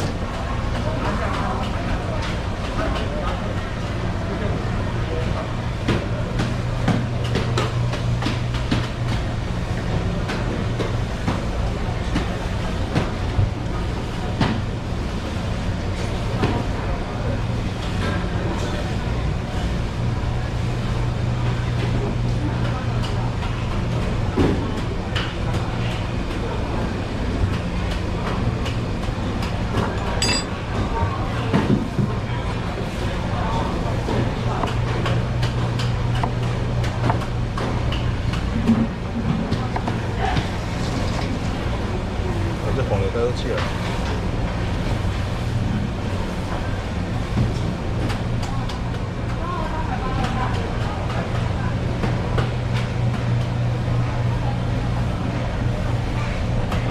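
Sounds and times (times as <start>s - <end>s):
clinks and knocks at sink: 30.2s - 30.5s.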